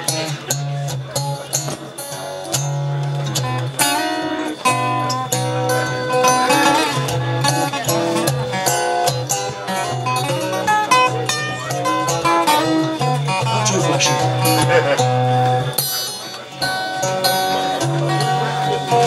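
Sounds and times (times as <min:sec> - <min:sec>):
fingerpicked acoustic guitar duet: 0:00.0 - 0:19.0.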